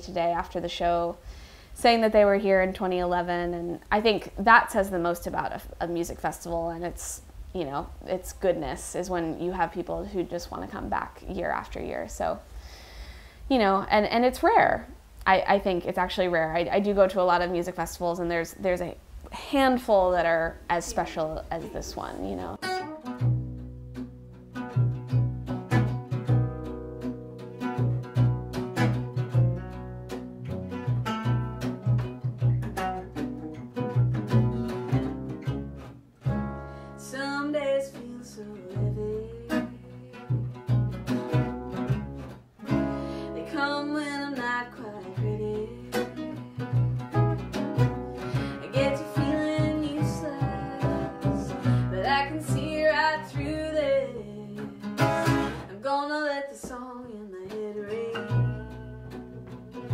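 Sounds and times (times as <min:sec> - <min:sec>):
acoustic guitar: 0:00.0 - 0:59.9
mandolin: 0:01.8 - 0:12.4, 0:13.6 - 0:59.9
plucked upright bass: 0:20.8 - 0:55.7, 0:57.4 - 0:59.9
woman singing: 0:37.0 - 0:40.5, 0:43.3 - 0:47.2, 0:48.2 - 0:59.9.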